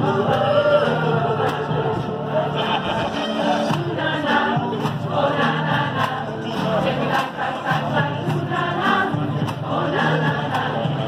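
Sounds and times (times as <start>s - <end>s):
women's choir singing: 0.0s - 11.0s.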